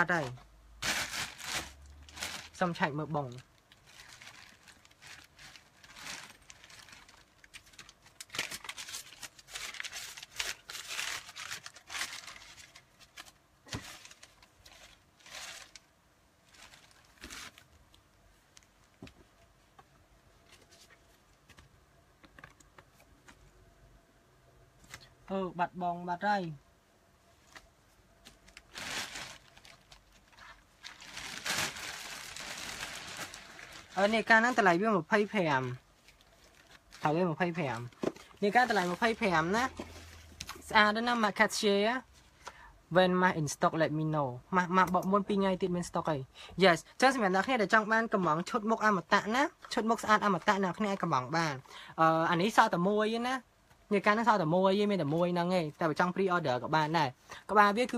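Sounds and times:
rustling and crinkling: 0.2 - 23.6, 27.3 - 42.6.

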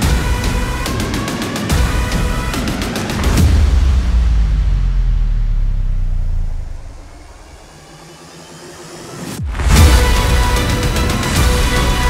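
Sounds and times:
deep low rumble: 3.4 - 8.0.

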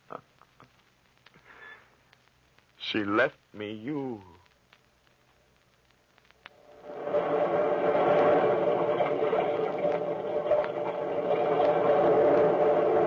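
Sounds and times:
loud drone of held tones: 6.6 - 13.0.

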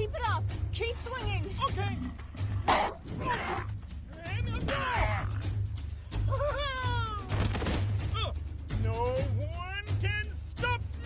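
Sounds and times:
low music bed: 0.0 - 11.0.

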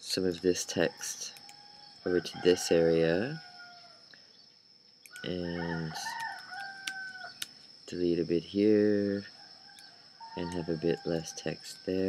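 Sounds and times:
sharp clicks: 1.3 - 1.6.

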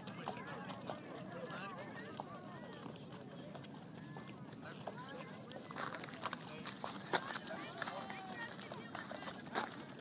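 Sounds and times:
horse hooves on sandy ground: 0.0 - 10.0.

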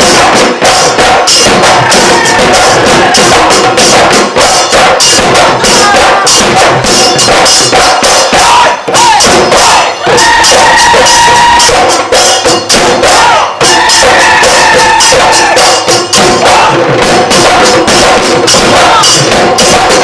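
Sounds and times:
dhol drums beaten fast: 0.0 - 20.0
jingling metal percussion: 0.0 - 20.0.

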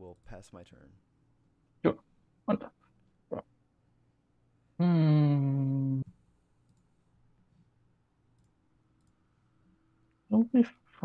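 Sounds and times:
low steady hum: 0.0 - 11.0
computer mouse clicks: 8.4 - 9.2.

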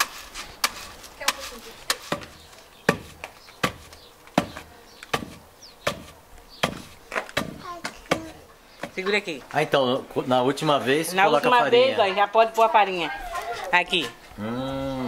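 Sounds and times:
pestle pounding in wooden mortar: 0.0 - 9.0.

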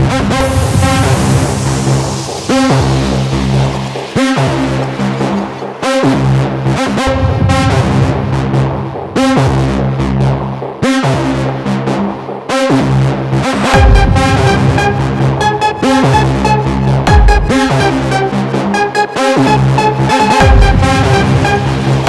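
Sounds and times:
hard techno synthesizer music: 0.0 - 22.0
falling whoosh sweep: 0.4 - 9.2.

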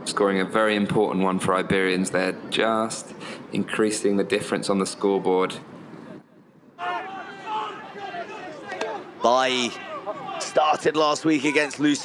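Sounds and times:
indistinct voices calling out: 6.8 - 11.8.

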